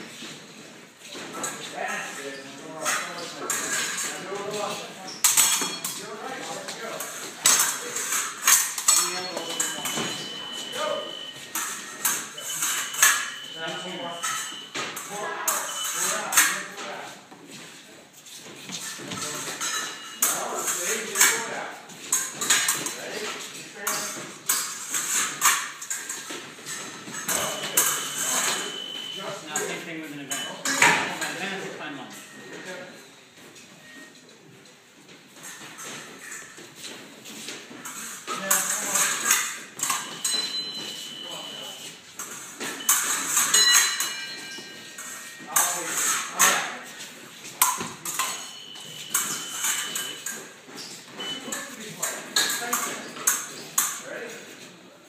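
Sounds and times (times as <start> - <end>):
fencing blades clashing: 0.2 - 32.4, 35.2 - 54.6
high scoring beeps: 8.9 - 16.4, 27.3 - 29.5, 30.3 - 31.1, 39.8 - 42.0, 42.7 - 45.6, 48.0 - 50.3, 51.2 - 51.8.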